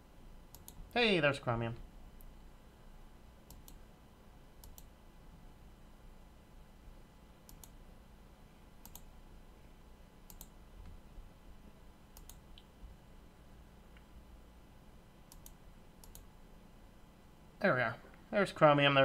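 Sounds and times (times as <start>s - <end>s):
low steady hum: 0.0s - 19.0s
computer mouse clicks: 0.5s - 0.9s, 3.4s - 3.8s, 4.6s - 4.9s, 7.5s - 7.8s, 8.8s - 9.1s, 10.3s - 11.0s, 12.2s - 12.7s, 15.3s - 16.3s.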